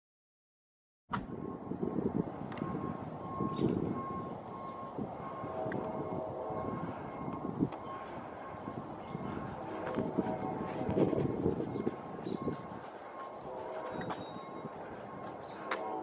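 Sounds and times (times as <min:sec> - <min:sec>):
outdoor background rumble: 0:01.1 - 0:16.0
faint high whine: 0:02.5 - 0:16.0.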